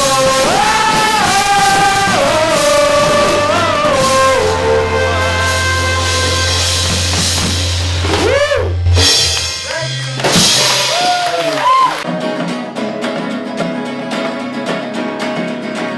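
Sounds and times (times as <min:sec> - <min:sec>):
strummed acoustic guitar music: 0:00.0 - 0:10.6, 0:12.1 - 0:15.9
live band final chord: 0:00.0 - 0:11.3
shouted whoops: 0:08.2 - 0:08.8, 0:10.7 - 0:12.1.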